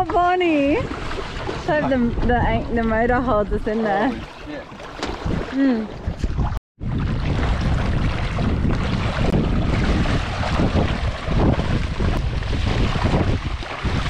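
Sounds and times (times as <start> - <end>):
water sloshing and splashing: 0.0 - 14.0
wind buffeting microphone: 0.0 - 14.0.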